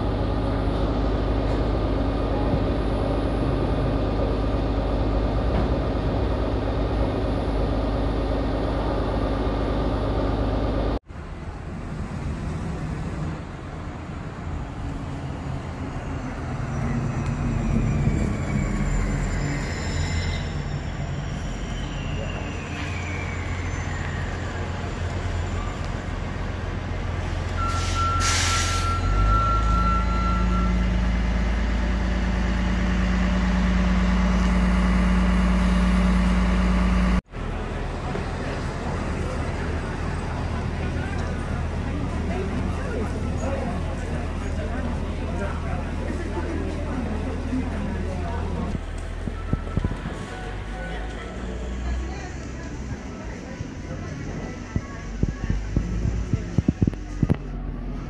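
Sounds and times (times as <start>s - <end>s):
bus engine drone: 0.0s - 58.0s
bus pulling away whine: 0.0s - 58.0s
air brake hiss: 27.6s - 29.0s.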